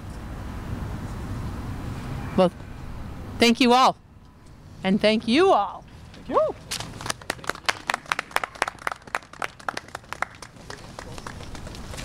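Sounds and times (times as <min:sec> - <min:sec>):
people clapping: 0:06.7 - 0:12.0.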